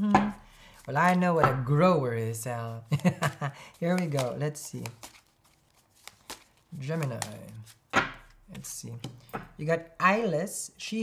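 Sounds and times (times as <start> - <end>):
cards being handled: 0.2 - 9.6.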